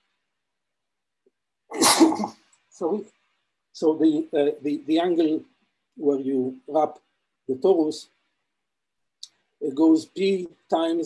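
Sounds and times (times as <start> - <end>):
man coughing: 1.7 - 2.3.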